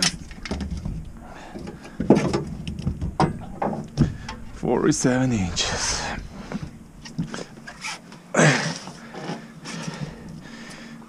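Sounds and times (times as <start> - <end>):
low rumble: 2.5 - 7.7.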